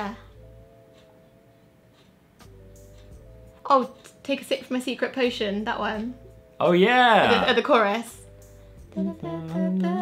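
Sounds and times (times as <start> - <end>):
person humming: 6.9 - 7.6, 8.9 - 10.0.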